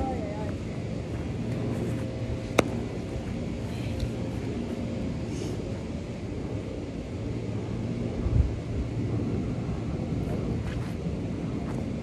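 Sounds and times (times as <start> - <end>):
faint steady hum: 0.0 - 12.0
wind on microphone: 7.6 - 12.0.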